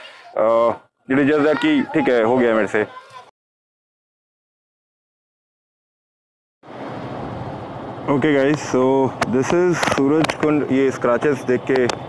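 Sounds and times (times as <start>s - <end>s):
vehicle rumble with hiss: 6.7s - 12.0s.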